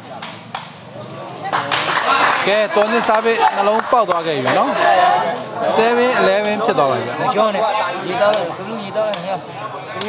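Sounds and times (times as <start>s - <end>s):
crowd chatter: 0.0s - 10.0s
crowd shouting: 1.7s - 10.0s.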